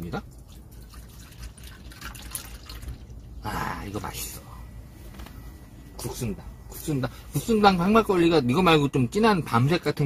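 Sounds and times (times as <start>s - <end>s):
liquid pouring into metal bowl: 0.5s - 3.0s.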